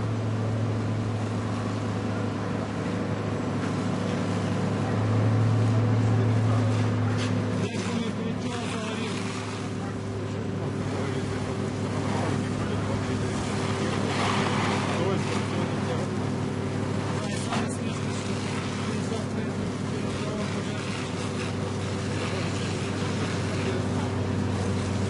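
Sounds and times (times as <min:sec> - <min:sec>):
fire engine pump humming: 0:00.0 - 0:25.0
fire hose jet spraying water: 0:01.2 - 0:25.0.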